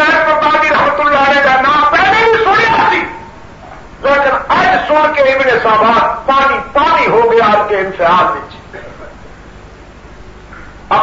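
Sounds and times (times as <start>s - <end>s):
man preaching: 0.0s - 3.4s, 4.0s - 9.1s.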